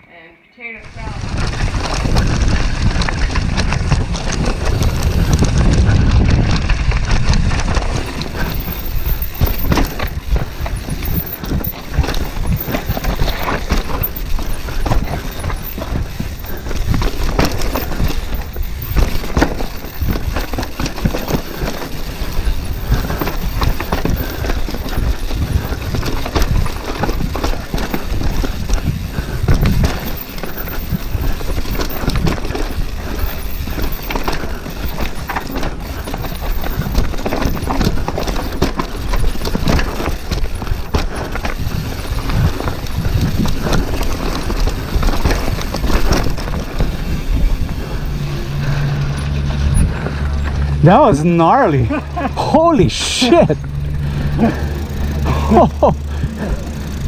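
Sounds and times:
mountain bike rattling over rocks: 0:00.9 - 0:57.0
tyres on loose dirt: 0:00.9 - 0:57.0.

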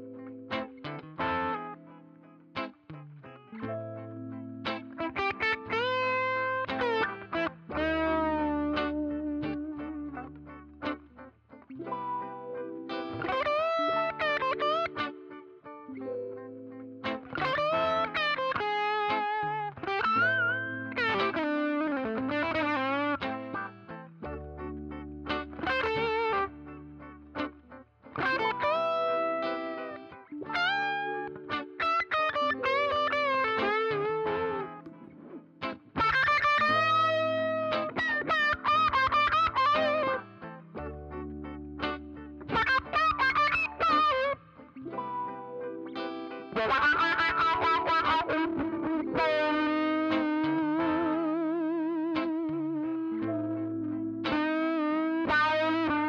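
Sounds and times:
distorted electric guitar: 0:00.0 - 0:56.0.

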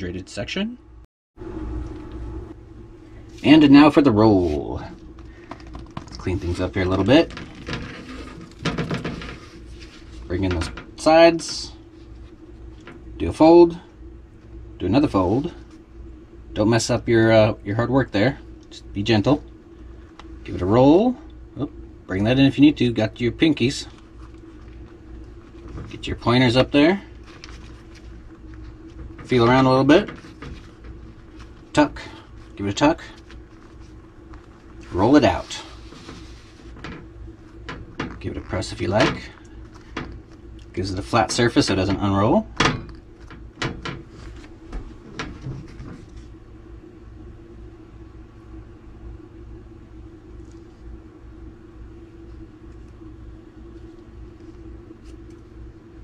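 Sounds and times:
low steady hum: 0:00.0 - 0:56.0.

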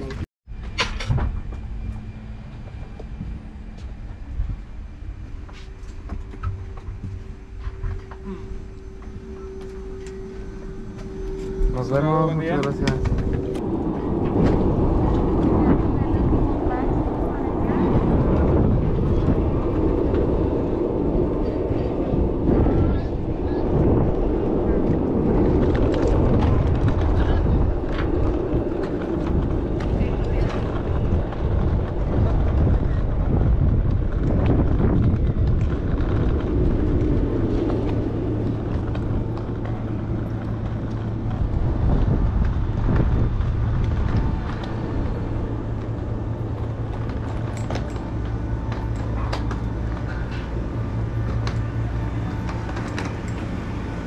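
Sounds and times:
low mechanical rumble: 0:00.0 - 0:54.0
steady low hum: 0:00.0 - 0:54.0
wind: 0:00.0 - 0:54.0
indistinct voices: 0:07.7 - 0:33.4.

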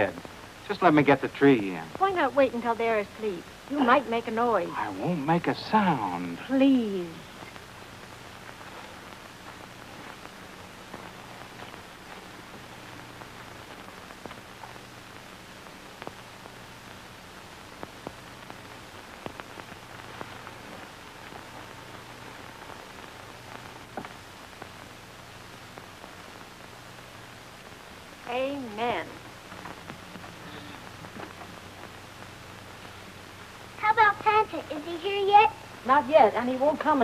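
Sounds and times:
steady film hiss: 0:00.0 - 0:37.0
low hum: 0:01.7 - 0:34.9.

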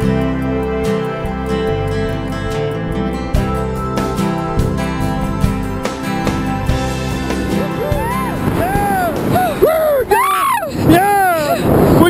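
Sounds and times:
background music: 0:00.0 - 0:11.1
people whooping and yelling: 0:07.4 - 0:11.7.

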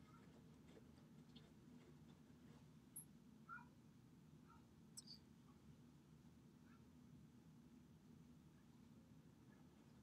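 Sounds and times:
faint brief chirps: 0:05.0 - 0:05.3.

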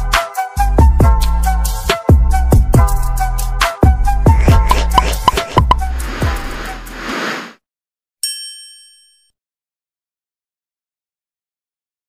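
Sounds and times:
bright ding chime: 0:08.2 - 0:09.3.

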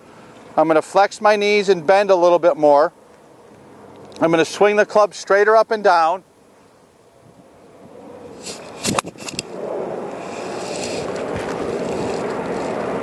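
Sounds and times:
steady rushing noise: 0:07.1 - 0:13.0.

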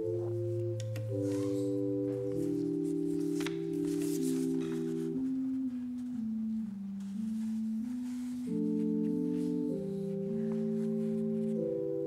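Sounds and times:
organ music: 0:00.0 - 0:12.0.

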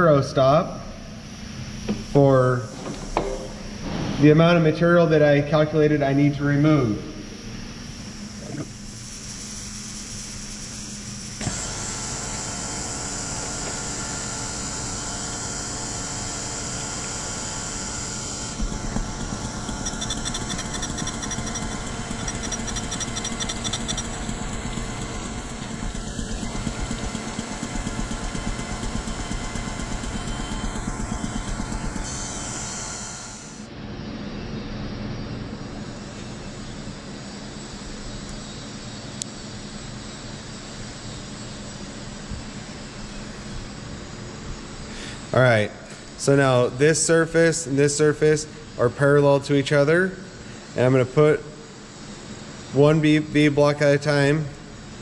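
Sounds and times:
machine humming: 0:00.0 - 0:55.0
grinding wheel grinding steel: 0:11.4 - 0:33.7.

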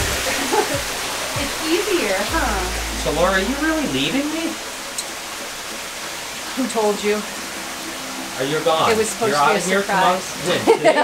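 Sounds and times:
steady background hiss: 0:00.0 - 0:11.0
person's voice: 0:01.4 - 0:04.6.

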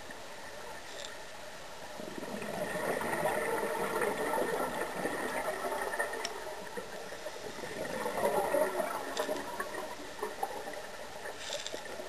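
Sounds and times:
scuba exhaust bubbles underwater: 0:02.0 - 0:12.0.

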